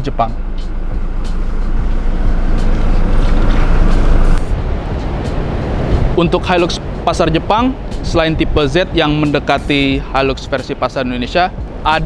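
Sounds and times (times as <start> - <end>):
motor vehicle rumble: 0.0 - 12.0.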